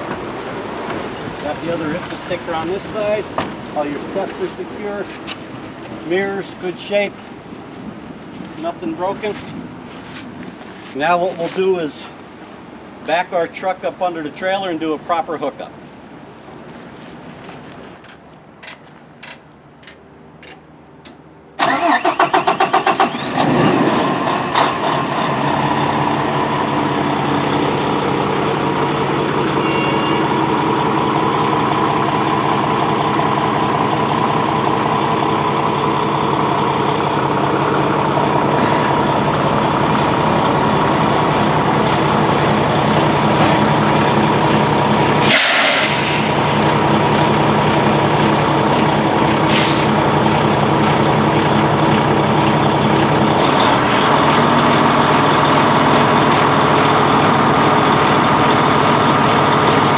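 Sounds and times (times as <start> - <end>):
diesel engine cranking and idling: 0.0 - 9.4, 18.7 - 59.9
air hisses: 45.2 - 46.5, 49.5 - 49.9.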